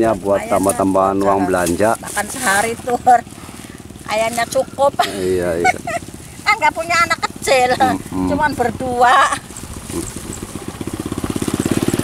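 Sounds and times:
small motorcycle engine running: 0.0s - 12.0s.

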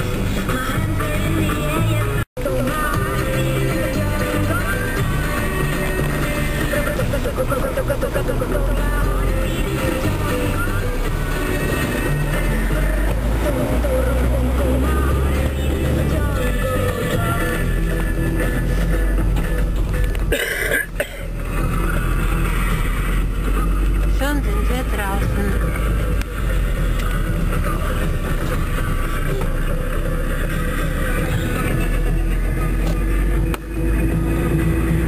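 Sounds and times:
car engine and tyres rumbling: 0.0s - 35.0s
song with singing on car radio: 0.0s - 35.0s.

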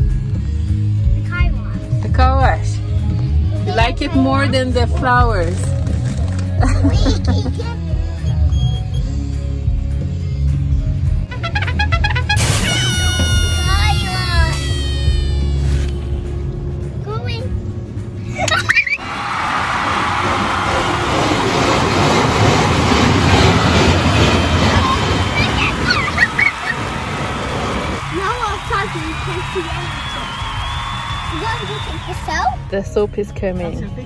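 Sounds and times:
music: 0.0s - 18.4s, 28.0s - 34.0s
car wash water jets hissing: 19.0s - 30.0s.

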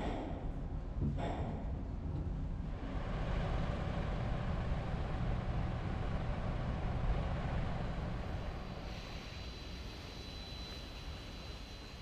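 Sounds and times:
vehicle engines humming: 2.8s - 9.1s.

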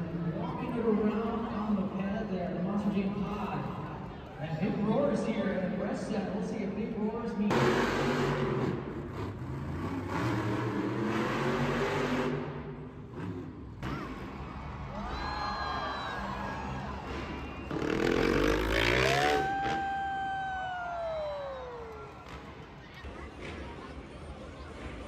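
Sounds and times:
monster truck engines revving: 0.0s - 25.0s.

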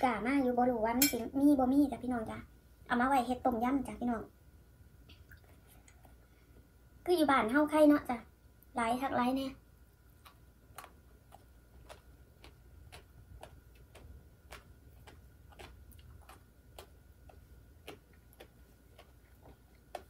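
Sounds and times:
faint wet chewing: 10.0s - 20.0s.

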